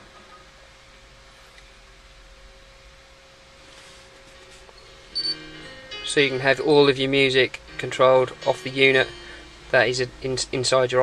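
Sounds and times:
faint steady hum: 0:00.0 - 0:11.0
steady hiss: 0:00.6 - 0:11.0.

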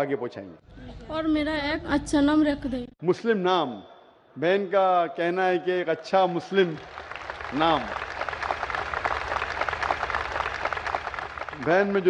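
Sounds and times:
large audience applauding: 0:06.1 - 0:12.0.

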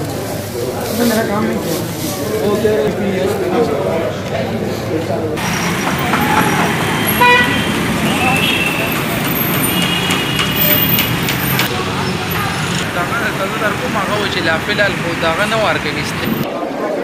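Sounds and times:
car horns tooting: 0:05.4 - 0:16.5
vehicle engines and road noise: 0:05.4 - 0:16.5.

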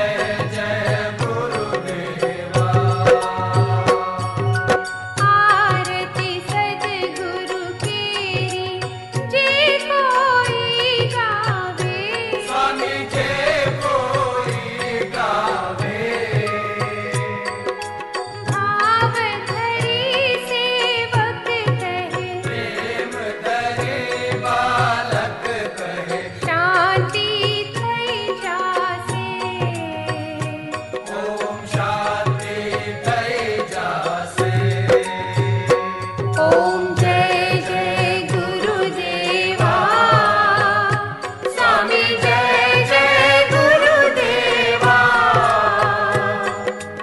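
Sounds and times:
chanted devotional singing: 0:00.0 - 0:47.0
instrumental accompaniment: 0:00.0 - 0:47.0
steady percussion beat: 0:00.0 - 0:47.0
person chanting a sung melody: 0:36.4 - 0:40.8.

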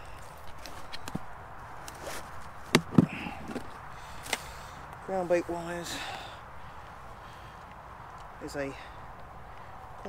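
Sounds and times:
faint background noise: 0:00.0 - 0:10.0
handling clicks and knocks: 0:02.6 - 0:04.4.

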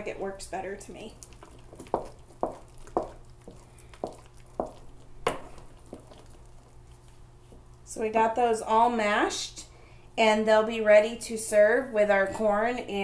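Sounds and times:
potato masher mashing potatoes: 0:00.0 - 0:07.8
steady low hum: 0:00.0 - 0:13.0.

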